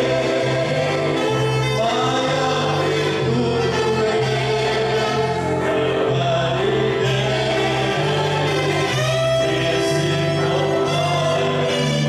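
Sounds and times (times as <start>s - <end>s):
gospel voices singing: 0.0s - 12.0s
sustained bass notes: 0.0s - 12.0s.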